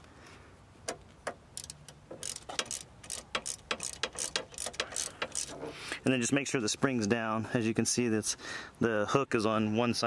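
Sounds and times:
socket ratchet clicking: 0.9s - 5.6s.

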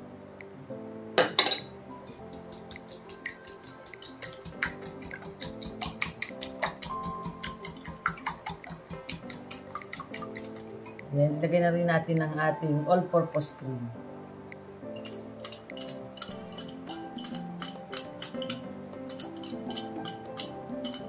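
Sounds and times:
background music: 0.0s - 21.0s
glass clink: 1.2s - 1.8s
whisk clicking against glass bowl: 2.1s - 11.0s, 15.0s - 21.0s.

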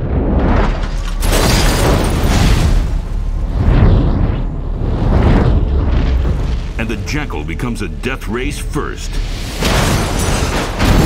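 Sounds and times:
deep rumble: 0.0s - 10.1s
explosion booms: 9.5s - 11.0s.

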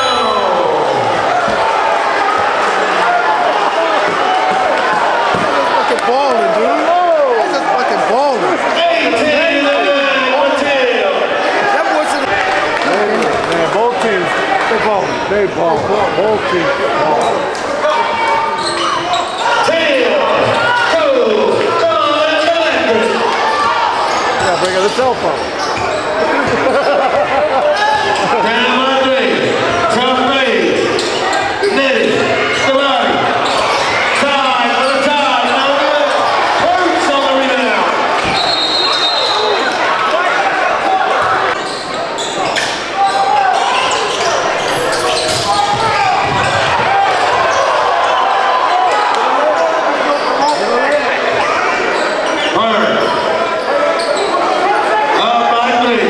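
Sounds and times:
crowd shouting and talking: 0.0s - 56.0s.

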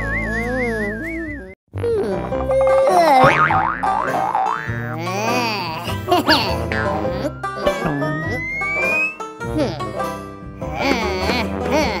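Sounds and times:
background music: 1.8s - 12.0s
springy swooping cartoon tones: 6.7s - 9.3s.

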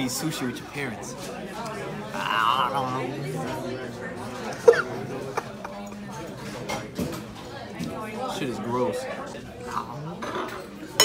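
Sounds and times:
murmuring voices: 0.8s - 11.0s
cutlery and dishes clinking: 5.7s - 7.9s, 10.2s - 11.0s.

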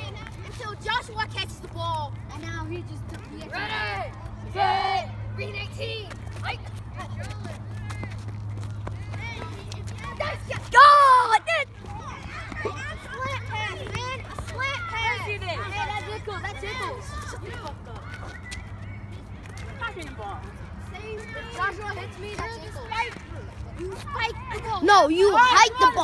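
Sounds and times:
young people talking and calling: 0.0s - 26.0s
loud shout: 3.5s - 5.5s, 10.3s - 16.0s.

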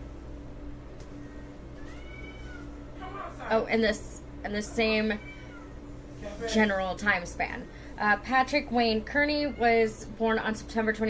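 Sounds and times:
cat meowing: 1.8s - 3.5s, 4.9s - 5.9s.

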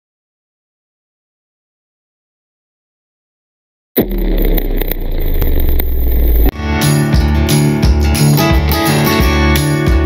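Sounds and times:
sharp crackles: 4.0s - 6.5s.

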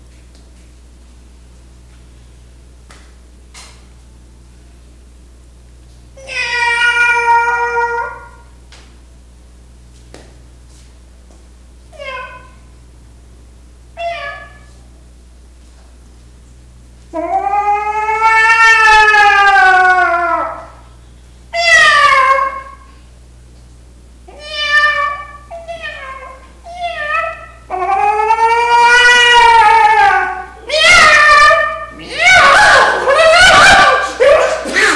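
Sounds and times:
man imitating dog howl: 17.2s - 20.7s, 27.0s - 34.9s
man imitating cat meow: 25.8s - 32.7s.

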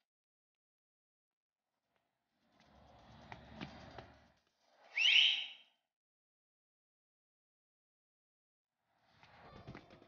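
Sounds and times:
person whistling upward: 4.9s - 5.7s.

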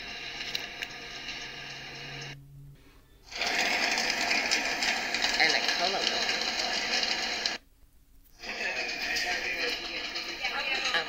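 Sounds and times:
mechanical whirring: 0.0s - 7.6s.

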